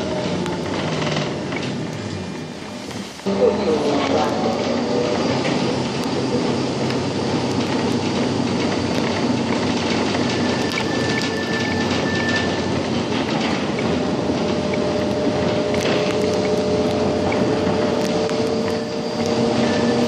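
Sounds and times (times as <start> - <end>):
tram rolling rumble: 0.0 - 20.0
wheel and rail clicks: 3.8 - 20.0
faint high whine: 13.7 - 20.0.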